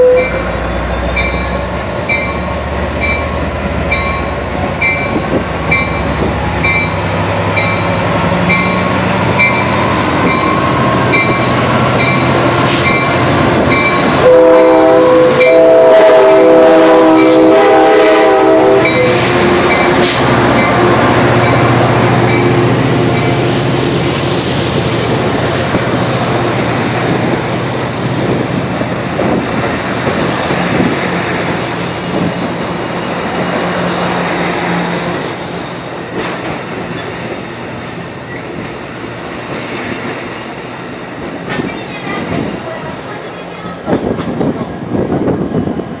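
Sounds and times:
diesel locomotive engine: 0:00.0 - 0:46.0
train wheels clicking on rails: 0:00.6 - 0:14.3, 0:18.8 - 0:45.8.

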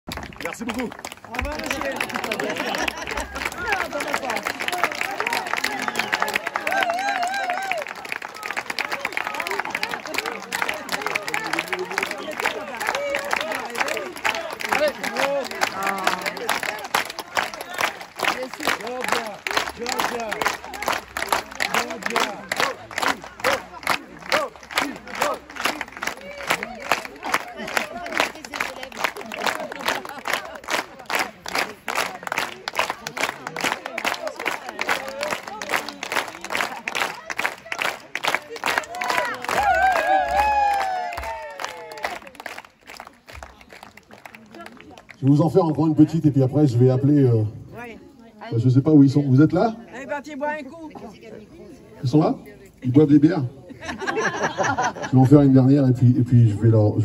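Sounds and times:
audience applauding and cheering: 0:00.1 - 0:45.4
rhythmic clapping in unison: 0:00.1 - 0:45.4.

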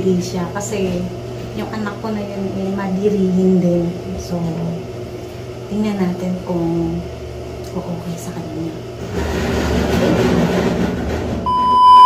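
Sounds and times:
muffled noisy room sound: 0:00.0 - 0:11.5
high test-tone beep: 0:11.5 - 0:12.0.

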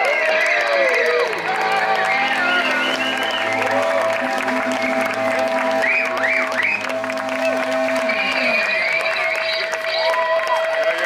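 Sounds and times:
audience applause: 0:00.0 - 0:11.0
live band with electric guitars: 0:01.2 - 0:09.4.

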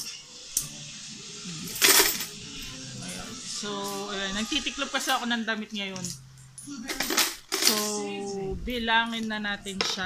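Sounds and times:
coins clattering onto coins: 0:01.7 - 0:02.4, 0:06.9 - 0:08.0.

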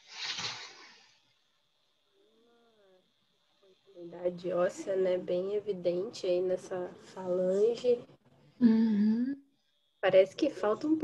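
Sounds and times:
faint murmur of a person's voice: 0:02.2 - 0:09.5.

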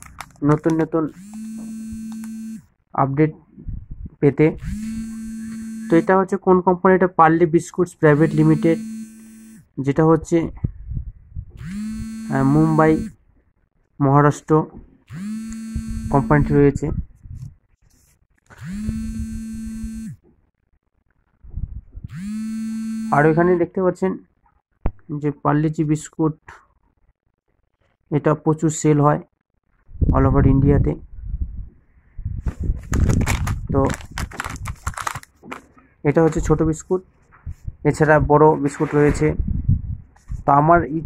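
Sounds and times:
person humming: 0:01.2 - 0:02.6
buzzing tone with upward slide: 0:01.2 - 0:02.7, 0:04.6 - 0:06.2, 0:08.2 - 0:09.7, 0:11.6 - 0:13.2, 0:15.1 - 0:16.6, 0:18.6 - 0:20.2, 0:22.1 - 0:23.4.

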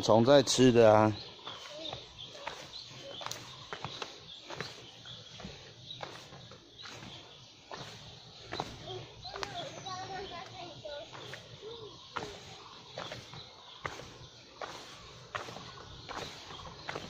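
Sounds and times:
faint voices: 0:00.0 - 0:17.0
footsteps on stone steps: 0:00.0 - 0:17.0.

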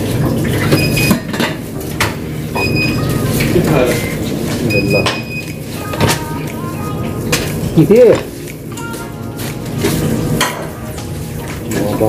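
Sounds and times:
metal utensils and pans clinking: 0:00.0 - 0:12.0.

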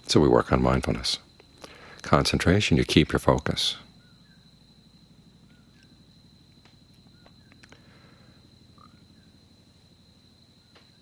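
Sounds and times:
low hum: 0:00.0 - 0:11.0
animal chirps: 0:08.7 - 0:09.4.

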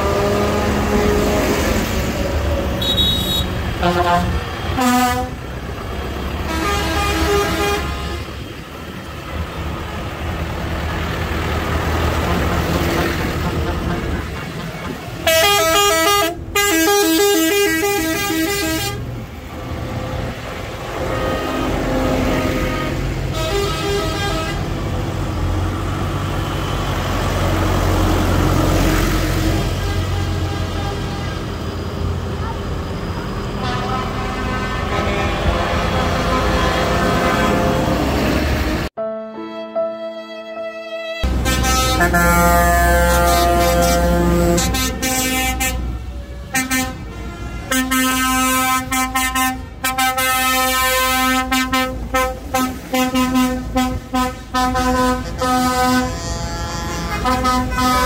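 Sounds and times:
tractor diesel engines rumbling: 0:00.0 - 0:39.0, 0:41.2 - 0:58.0
tractor horn blasts: 0:02.8 - 0:05.5, 0:06.4 - 0:08.4, 0:15.2 - 0:19.1, 0:20.9 - 0:24.8, 0:29.6 - 0:31.6, 0:33.6 - 0:37.9, 0:39.1 - 0:58.0.

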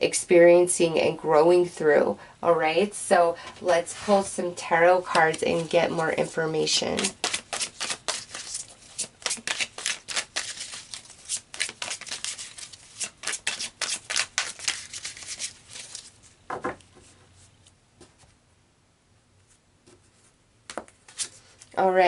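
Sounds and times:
cards being shuffled: 0:06.9 - 0:17.1, 0:19.9 - 0:21.8.

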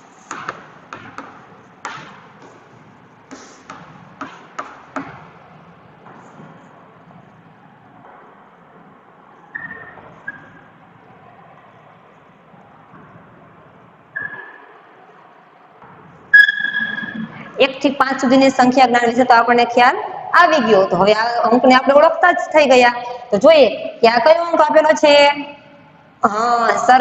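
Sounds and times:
chalk tapping on chalkboard: 0:00.2 - 0:02.7, 0:03.3 - 0:05.2
chalk scratching on chalkboard: 0:03.3 - 0:04.4.

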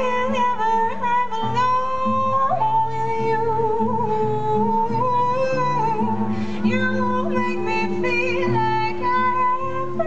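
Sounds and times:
acoustic and electric guitar: 0:00.0 - 0:10.0
woman singing long notes: 0:00.0 - 0:10.0.

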